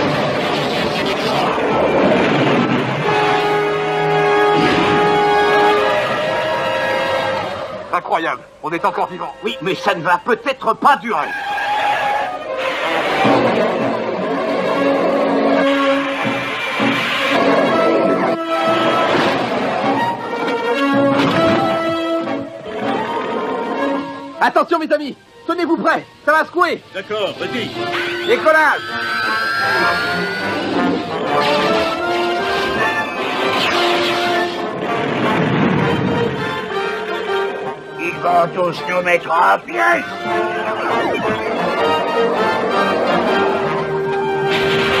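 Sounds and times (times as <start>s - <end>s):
cartoon action music: 0.0s - 7.6s, 12.6s - 24.2s, 27.0s - 45.0s
rising whine: 27.4s - 32.0s.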